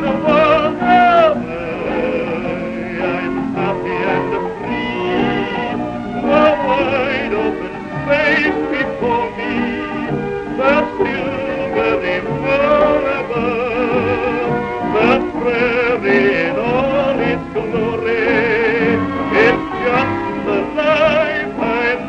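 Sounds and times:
band accompaniment: 0.0 - 22.0
man singing ballad with vibrato: 0.0 - 22.0.

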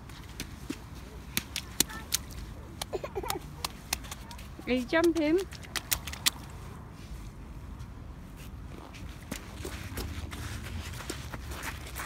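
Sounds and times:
rubber boots slapping on wet sand: 0.0 - 6.5.

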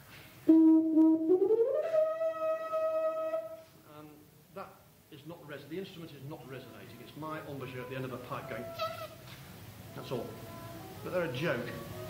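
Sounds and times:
tuba playing high note: 0.4 - 3.6, 7.7 - 9.2.

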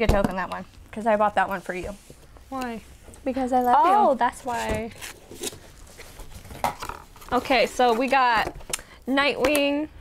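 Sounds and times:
cardboard boxes scraping and tapping: 4.4 - 8.6.

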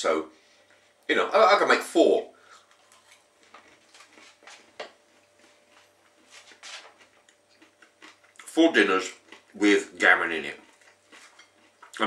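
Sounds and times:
man chewing food: 2.4 - 12.0.

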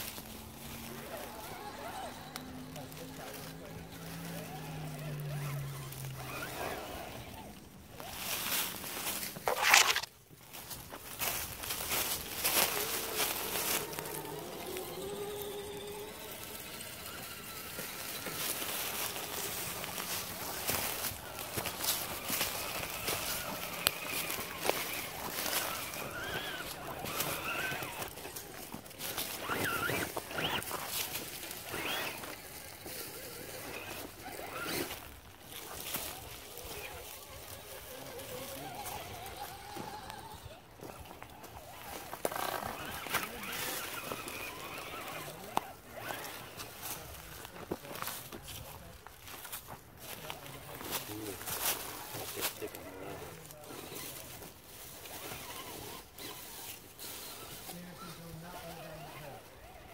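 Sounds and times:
dry leaves crunching under tyres: 0.0 - 59.9
footsteps on leaves: 0.0 - 59.9.

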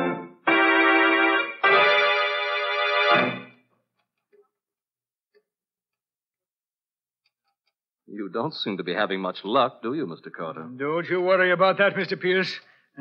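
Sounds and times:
organ chords: 0.0 - 3.6.

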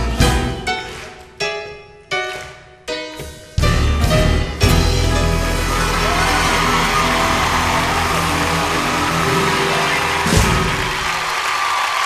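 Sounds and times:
piano: 0.0 - 12.0.

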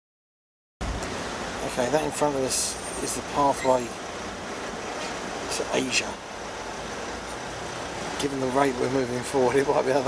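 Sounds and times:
surrounding traffic: 0.8 - 10.0.

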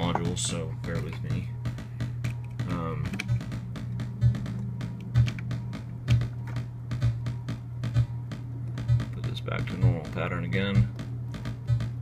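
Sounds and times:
low synthesizer thumps: 0.1 - 12.0
steady low synthesizer tone: 0.4 - 10.2.

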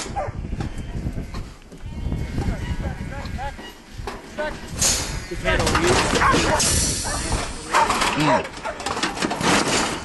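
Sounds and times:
metal crate knocks and rattles: 5.6 - 6.8, 7.7 - 10.0.

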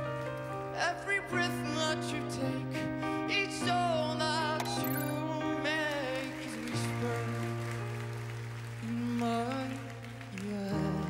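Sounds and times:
slow piano ballad: 0.0 - 11.0.

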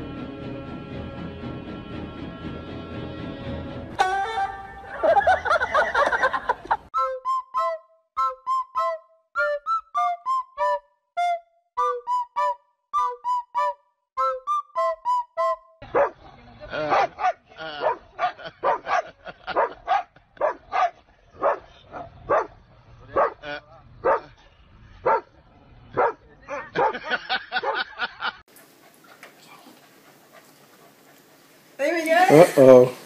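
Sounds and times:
dog barking: 15.9 - 16.2, 16.8 - 22.5, 23.1 - 23.4, 24.0 - 24.3, 25.0 - 25.3, 26.0 - 27.9
faint hiss: 28.5 - 33.0.

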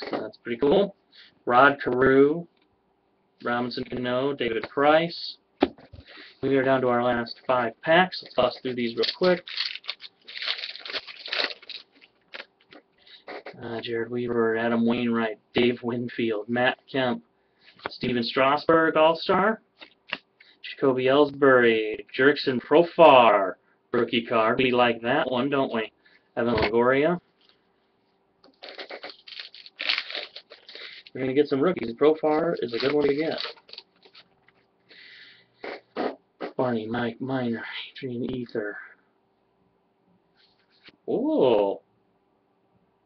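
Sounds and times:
wrapper crinkling and tearing: 8.6 - 12.8, 28.6 - 31.1, 32.3 - 34.3.

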